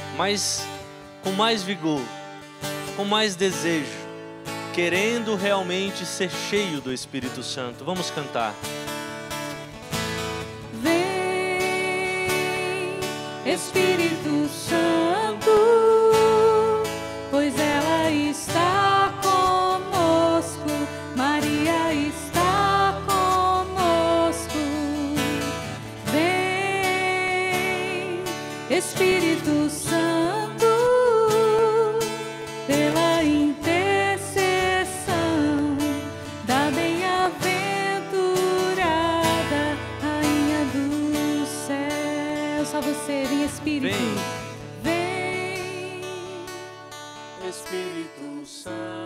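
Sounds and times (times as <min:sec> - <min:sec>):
acoustic guitar: 0:00.0 - 0:49.0
person singing worship song: 0:10.7 - 0:49.0.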